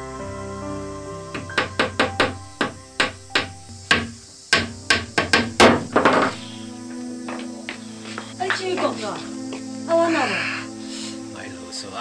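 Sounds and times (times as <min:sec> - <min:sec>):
soft background music: 0:00.0 - 0:12.0
hammer blows: 0:01.4 - 0:06.6.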